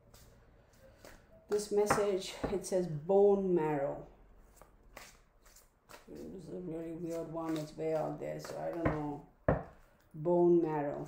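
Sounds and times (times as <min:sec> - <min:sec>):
cards being handled: 0:04.5 - 0:06.4, 0:07.0 - 0:08.8.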